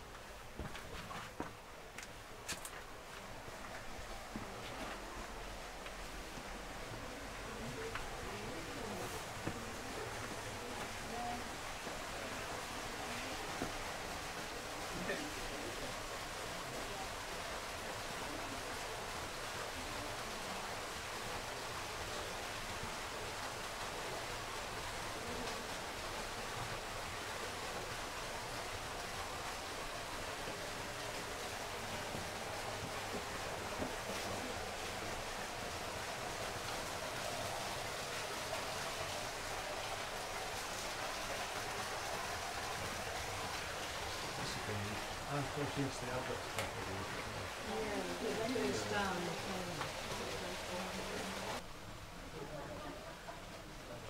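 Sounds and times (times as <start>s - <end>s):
outdoor background hiss: 0.0s - 54.0s.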